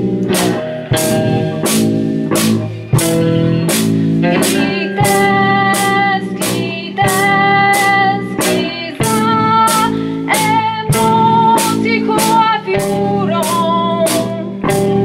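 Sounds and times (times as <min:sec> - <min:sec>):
electric guitar chords: 0:00.0 - 0:15.0
steady drum beat: 0:00.0 - 0:15.0.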